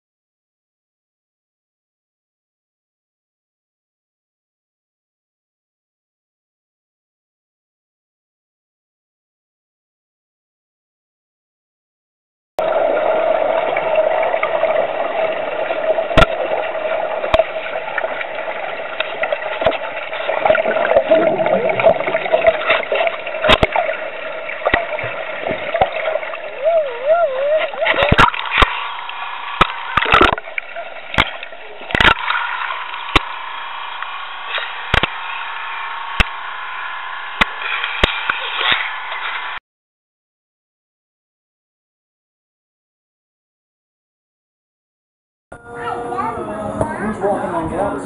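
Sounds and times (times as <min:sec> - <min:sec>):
muffled underwater water noise: 0:12.6 - 0:39.6
submarine hum: 0:12.6 - 0:39.6, 0:45.5 - 0:48.0.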